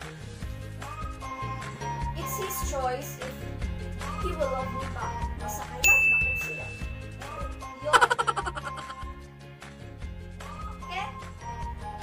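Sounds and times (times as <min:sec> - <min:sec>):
light background music: 0:00.0 - 0:12.0
high bell-like ding: 0:05.8 - 0:07.4.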